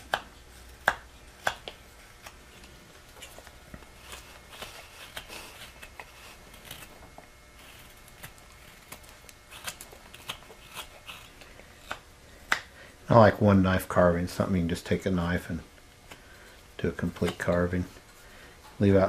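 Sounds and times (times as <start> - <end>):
knife slicing wood: 3.9 - 6.9, 7.6 - 12.6.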